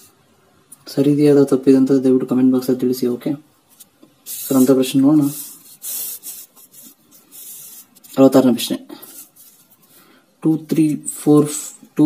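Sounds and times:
fingers rubbing on paper: 3.7s - 10.0s.

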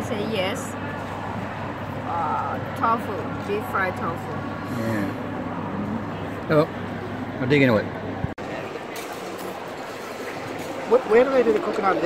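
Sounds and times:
indistinct diners chatter: 0.0s - 12.0s.

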